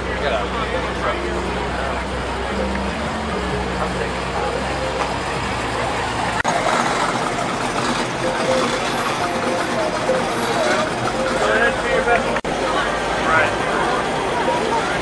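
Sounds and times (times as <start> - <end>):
people talking outdoors: 0.0 - 15.0
vehicle engine idling: 0.0 - 15.0.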